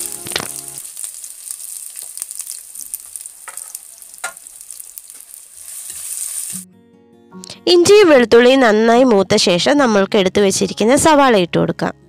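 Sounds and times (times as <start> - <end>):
ginger sizzling in hot oil: 0.0 - 6.7
spatula stirring: 0.2 - 6.6.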